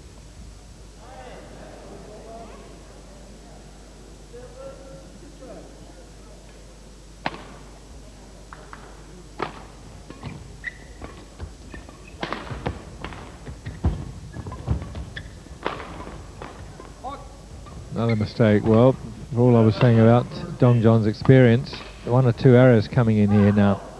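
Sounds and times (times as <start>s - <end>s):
racket hitting shuttlecock: 9.4s - 10.4s, 11.0s - 14.0s, 15.5s - 16.9s.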